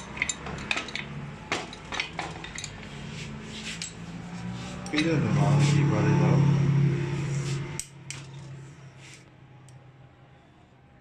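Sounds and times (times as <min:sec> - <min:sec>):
metal tools clinking: 0:00.0 - 0:03.0, 0:04.8 - 0:05.2.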